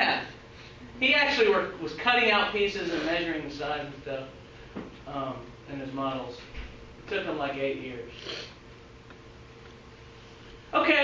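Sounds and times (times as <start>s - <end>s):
faint steady hum: 0.0s - 11.0s
person sniffing: 2.8s - 3.3s, 8.1s - 8.6s.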